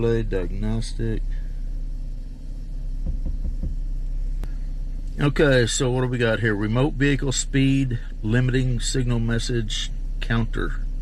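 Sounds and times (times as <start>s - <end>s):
car engine idling: 0.0s - 11.0s
soft low pulses: 0.0s - 11.0s.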